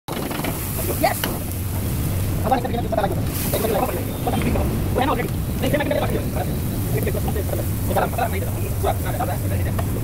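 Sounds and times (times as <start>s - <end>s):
low roar of cooking flame: 0.1s - 10.0s.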